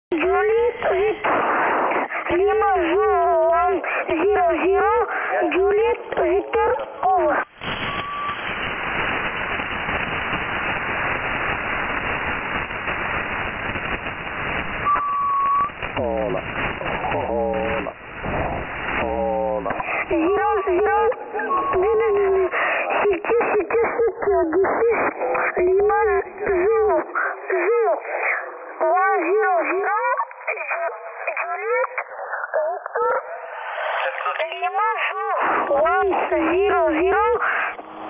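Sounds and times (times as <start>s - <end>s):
radio band hiss: 0.1s - 38.0s
radio voice: 2.0s - 7.5s, 15.7s - 37.8s.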